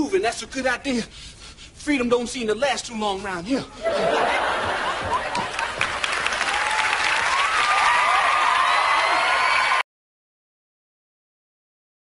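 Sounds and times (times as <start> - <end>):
audience applauding and cheering: 4.6 - 9.8.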